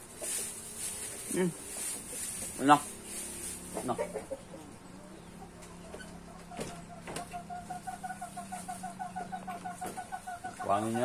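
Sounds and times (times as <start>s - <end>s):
chicken clucking: 0.0s - 11.0s.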